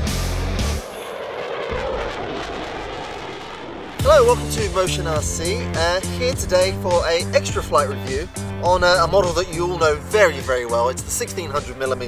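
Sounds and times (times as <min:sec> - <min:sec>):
music: 0:00.0 - 0:00.8, 0:04.0 - 0:12.0
jet fly-by sound effect: 0:00.0 - 0:12.0.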